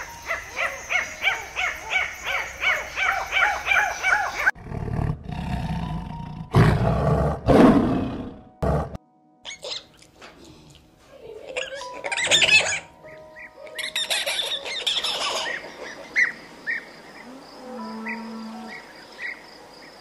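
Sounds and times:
lion roaring and growling: 4.6 - 9.0
lemur calls: 9.4 - 10.0, 11.5 - 19.4.

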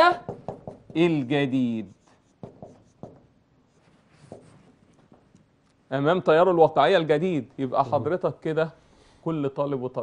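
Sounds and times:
marker pen writing on whiteboard: 0.0 - 5.6.

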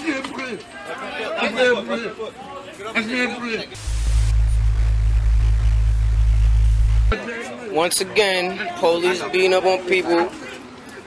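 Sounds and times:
deep electronic drone: 3.8 - 7.2.

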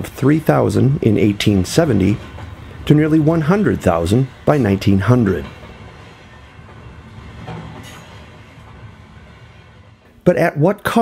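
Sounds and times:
train rumbling on rails: 0.0 - 11.0.

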